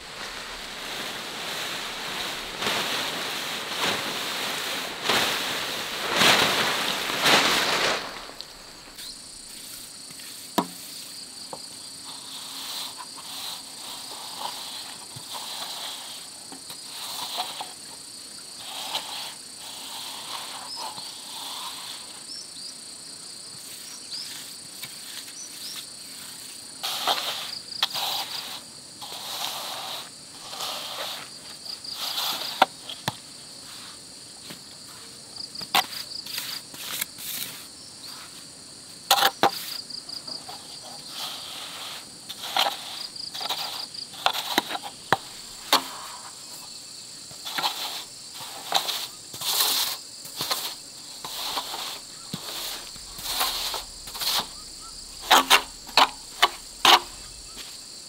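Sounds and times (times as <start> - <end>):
insect chorus trilling: 0.0 - 58.0
straightedge scraping wet concrete: 41.2 - 46.3, 47.4 - 57.7.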